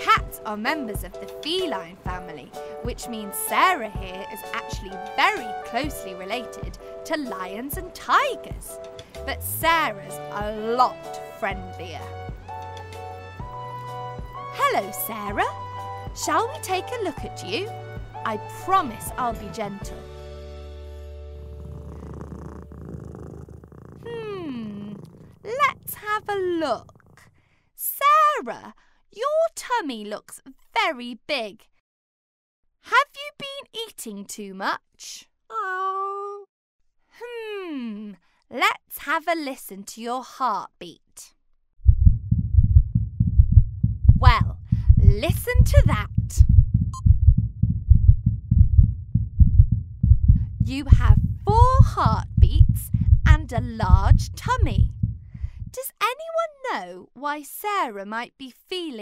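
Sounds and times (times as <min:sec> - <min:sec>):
cat purring: 0:21.3 - 0:27.4
heartbeats through a stethoscope: 0:41.9 - 0:55.8.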